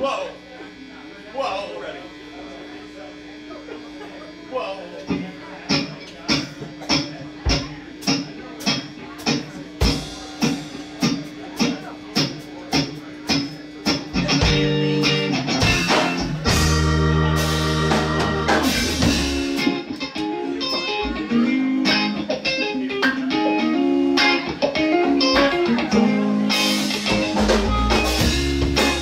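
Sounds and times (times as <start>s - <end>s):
live rock band: 5.1s - 29.0s.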